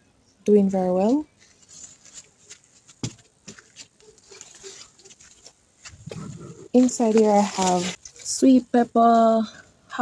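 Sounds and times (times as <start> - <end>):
light taps and rustles: 1.1 - 7.4.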